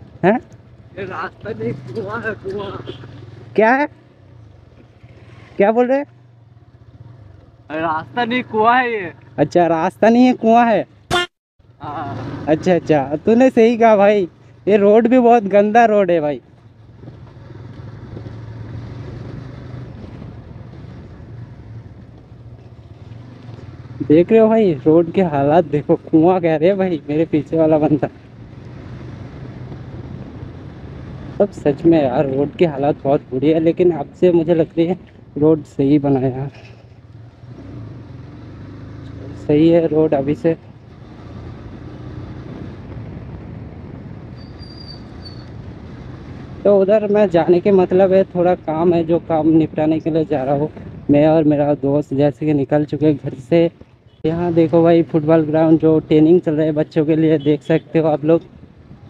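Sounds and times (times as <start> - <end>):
motorcycle engine and wind rumble: 0.0 - 11.0, 11.8 - 59.0
tyres on gravel road: 0.0 - 59.0
motorcycle engine running: 6.1 - 9.6, 16.5 - 31.5
wind on microphone: 42.4 - 45.8, 49.3 - 51.2
brief high-pitched squeal: 44.4 - 45.5.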